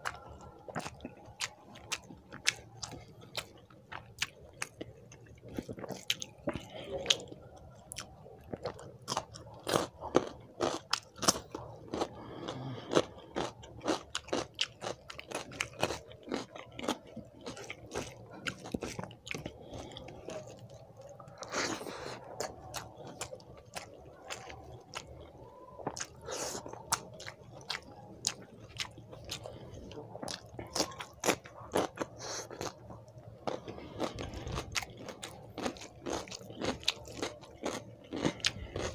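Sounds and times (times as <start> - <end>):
chewing rice: 0.0 - 38.9
mouth clicks and crunches: 0.0 - 38.9.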